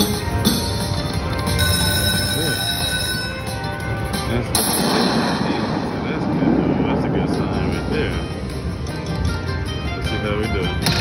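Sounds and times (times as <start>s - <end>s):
casino background noise: 0.0s - 5.2s
slot machine electronic tones: 0.0s - 6.0s.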